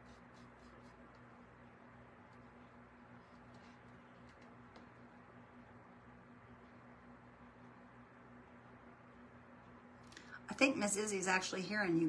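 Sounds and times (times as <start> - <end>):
paintbrush scratching: 0.0 - 1.6, 2.2 - 5.0
steady low hum: 0.0 - 12.0.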